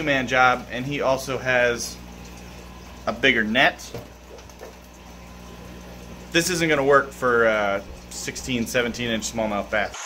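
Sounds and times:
aquarium equipment hum and hiss: 0.0 - 10.0.

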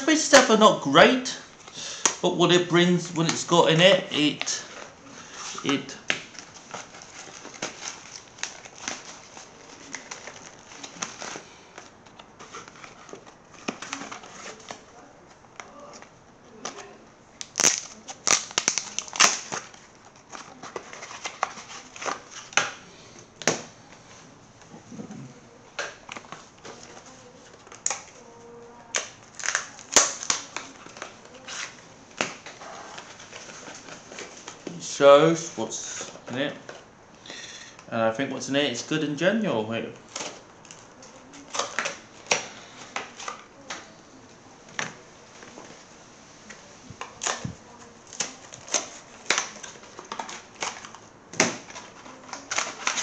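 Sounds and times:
wrapping crinkling: 0.0 - 24.2, 25.4 - 36.9, 45.2 - 53.0.

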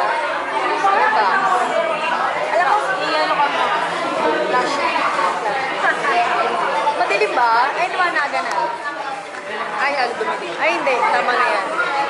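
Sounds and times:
crowd chatter indoors: 0.0 - 12.0
women chatting: 0.6 - 1.7, 2.4 - 9.0, 9.7 - 12.0.

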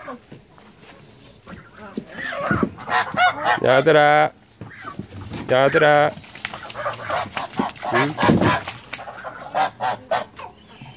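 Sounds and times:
geese honking: 1.5 - 5.9, 6.5 - 10.9.

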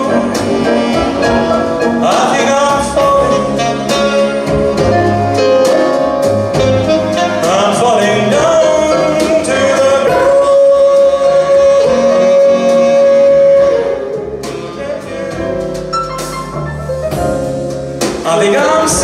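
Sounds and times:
man singing wordless melody: 2.0 - 4.4, 7.2 - 15.7, 18.2 - 19.0.

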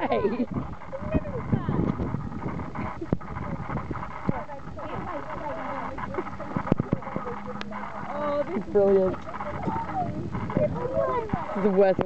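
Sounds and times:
women laughing: 0.0 - 1.6, 2.6 - 3.8, 4.9 - 11.8
women talking: 0.0 - 12.0.

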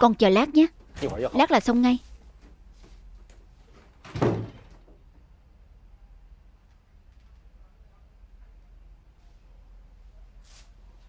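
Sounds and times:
wooden door slamming: 4.0 - 5.0.

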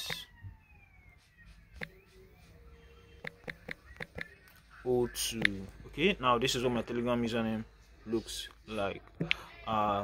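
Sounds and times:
faint siren wailing: 0.0 - 8.2.

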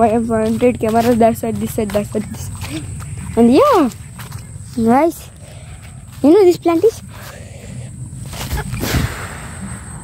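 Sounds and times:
rustling undergrowth: 0.0 - 9.2.

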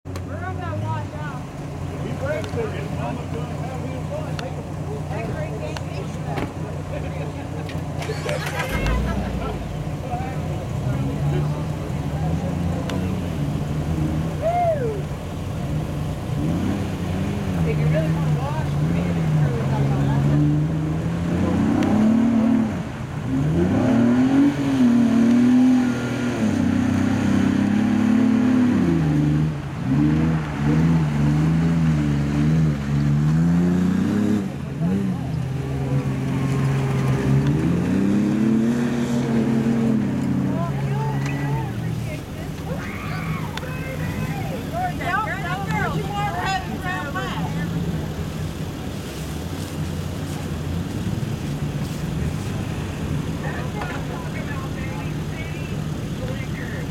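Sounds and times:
engine revving: 7.7 - 14.4, 15.6 - 42.5.

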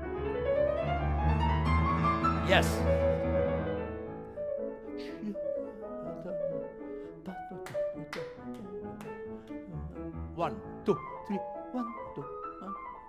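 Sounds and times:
grand piano playing: 0.0 - 13.0.

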